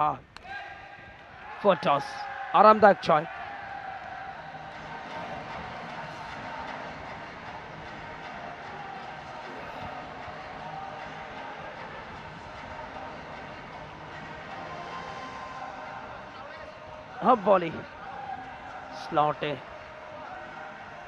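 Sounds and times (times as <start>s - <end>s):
sports hall background din: 0.0s - 21.0s
faint voices: 2.9s - 21.0s.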